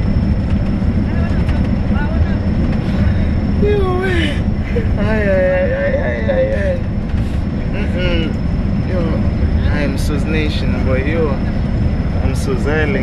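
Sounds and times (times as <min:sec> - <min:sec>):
bus engine rumble: 0:00.0 - 0:13.0
road noise inside bus: 0:00.0 - 0:13.0.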